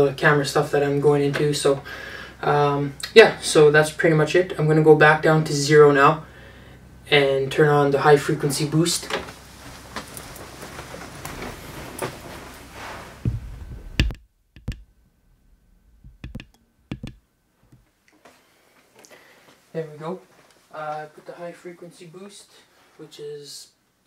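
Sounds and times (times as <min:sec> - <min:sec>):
man talking: 0:00.0 - 0:06.2, 0:07.1 - 0:09.2, 0:19.7 - 0:23.8
microphone handling rustling: 0:09.0 - 0:17.9
footsteps: 0:09.6 - 0:18.4
heavy thumps: 0:11.2 - 0:17.9
microphone button clicks: 0:13.3 - 0:17.8.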